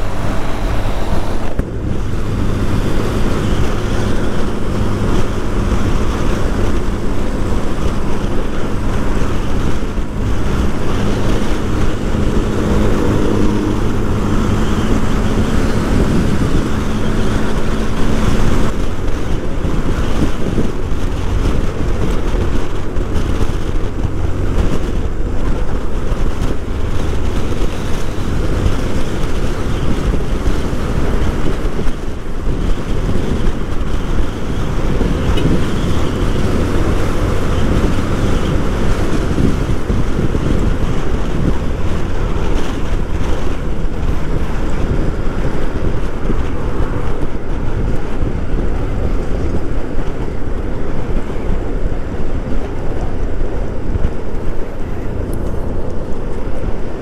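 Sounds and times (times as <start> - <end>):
motorcycle engine drone: 0.0 - 57.0
wind rushing over microphone: 0.0 - 57.0.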